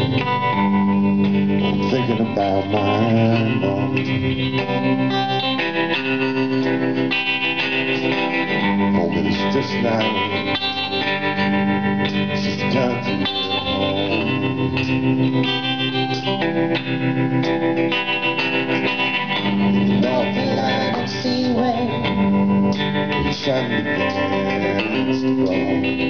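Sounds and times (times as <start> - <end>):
bass guitar: 0.0 - 26.0
guitar: 0.0 - 26.0.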